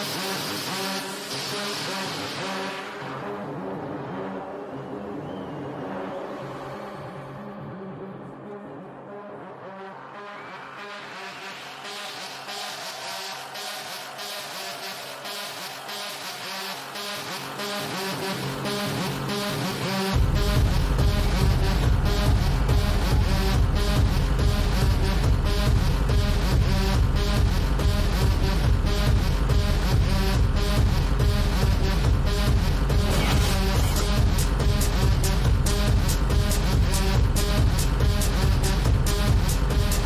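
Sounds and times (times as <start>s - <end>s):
hardcore dance music: 0.0s - 40.0s
buzzy synth bassline: 7.4s - 40.0s.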